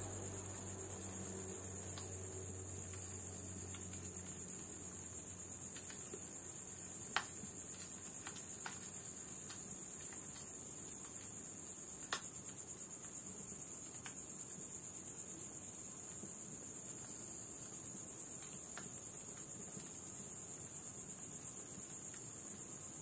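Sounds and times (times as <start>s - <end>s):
crickets trilling: 0.0s - 23.0s
wood fire crackling: 0.0s - 23.0s.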